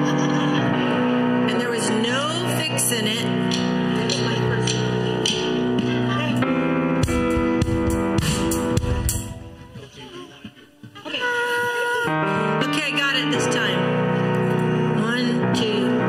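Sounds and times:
band playing: 0.0s - 10.4s
person singing: 11.0s - 14.0s.

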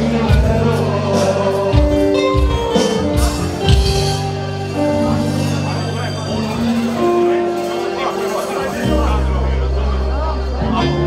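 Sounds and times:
music with singing and bass: 0.0s - 11.0s.

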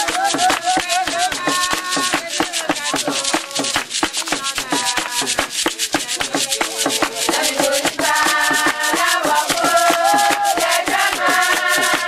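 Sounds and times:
hand clapping: 0.0s - 12.0s
hand rattles shaken: 0.0s - 12.0s
faint group singing: 4.7s - 12.0s.

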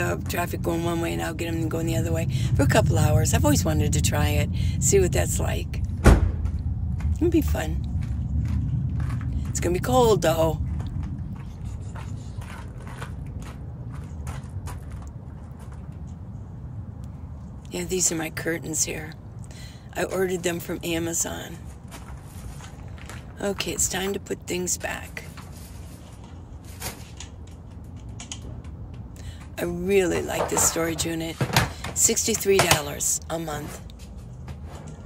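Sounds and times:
low background rumble: 0.0s - 35.0s.

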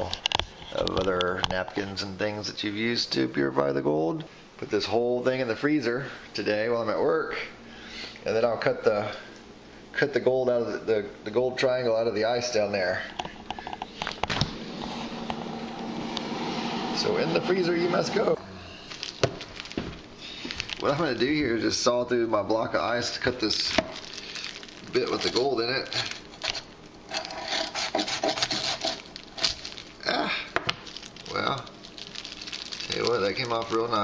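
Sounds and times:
freezer humming: 0.0s - 34.0s
knife sawing through ice: 25.8s - 29.6s.

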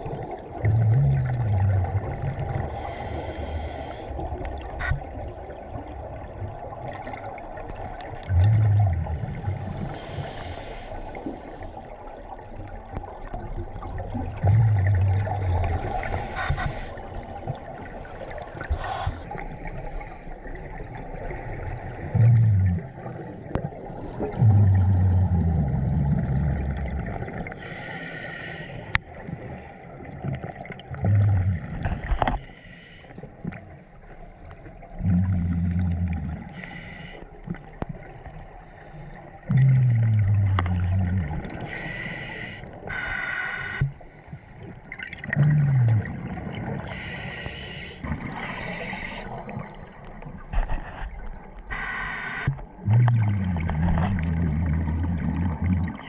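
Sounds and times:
rumble of exhaled bubbles: 0.0s - 10.1s, 11.0s - 27.6s, 29.0s - 32.4s, 34.3s - 36.7s, 39.4s - 42.0s, 44.6s - 47.2s, 48.0s - 56.0s
regulator hiss on inhale: 2.7s - 4.2s, 9.7s - 11.6s, 27.6s - 29.8s, 32.3s - 34.1s, 36.5s - 37.4s, 41.6s - 44.6s, 46.9s - 50.1s, 51.7s - 52.6s.

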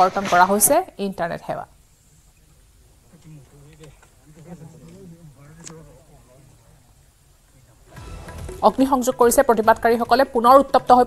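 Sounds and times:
man speaking faintly: 2.5s - 7.9s.

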